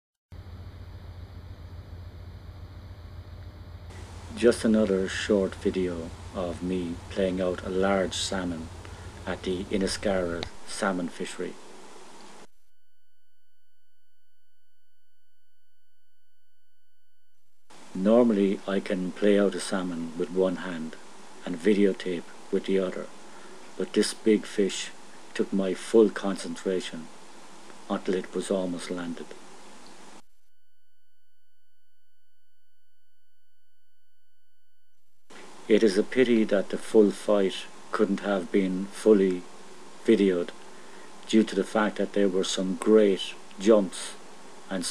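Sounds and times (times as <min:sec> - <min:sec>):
high electronic whine: 0:00.4 - 0:12.6
soft hiss: 0:00.5 - 0:12.5, 0:17.4 - 0:30.2, 0:34.9 - 0:44.9.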